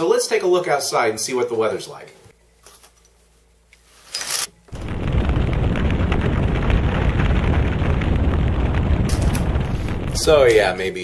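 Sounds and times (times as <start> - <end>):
deep rumble: 4.7 - 11.0.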